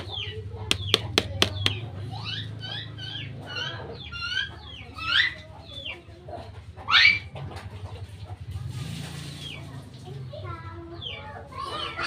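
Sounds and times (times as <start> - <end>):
birds calling: 0.0 - 8.5.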